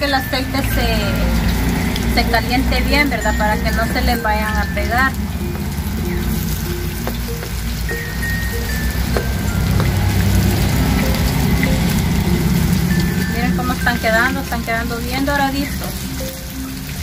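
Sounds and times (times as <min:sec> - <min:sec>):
food sizzling in hot oil: 0:00.0 - 0:17.0.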